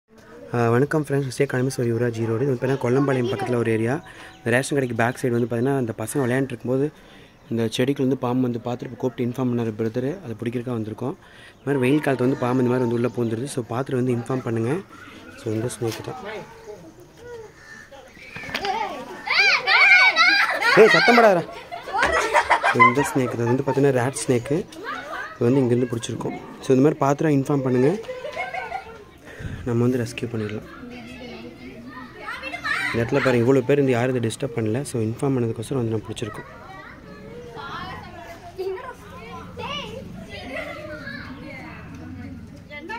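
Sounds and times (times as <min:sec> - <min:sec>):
children calling out: 0:11.6 - 0:29.4, 0:30.2 - 0:34.9, 0:35.8 - 0:42.9.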